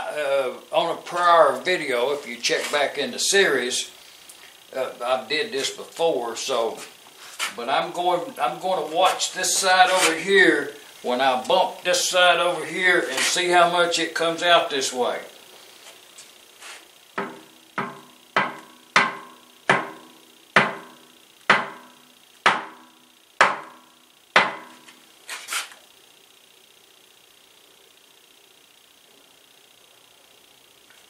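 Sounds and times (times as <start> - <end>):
hammer knocking on metal: 17.2 - 20.0, 20.6 - 21.9.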